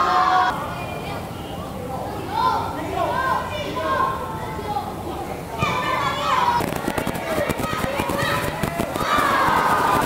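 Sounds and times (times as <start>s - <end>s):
footballers shouting: 5.6s - 10.0s.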